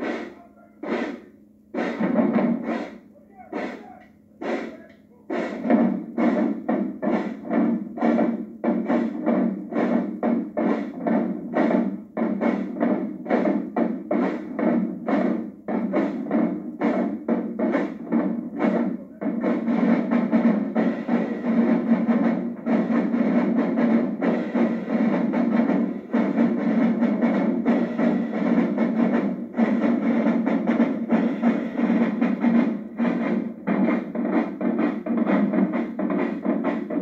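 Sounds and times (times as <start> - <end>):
marching bass drums: 0.0 - 37.0
snare drums: 0.0 - 37.0.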